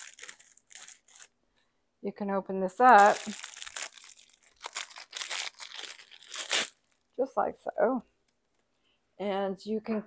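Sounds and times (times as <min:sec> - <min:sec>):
packaging rustling and tearing: 0:00.0 - 0:01.4, 0:02.9 - 0:07.1.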